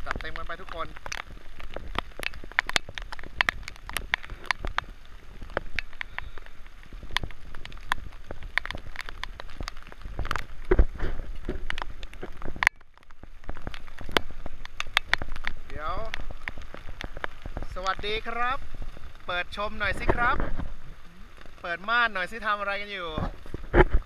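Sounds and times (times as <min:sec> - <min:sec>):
heavy rain: 0:00.0 - 0:24.0
low wind rumble: 0:00.0 - 0:24.0
raindrops tapping on camera: 0:00.0 - 0:24.0.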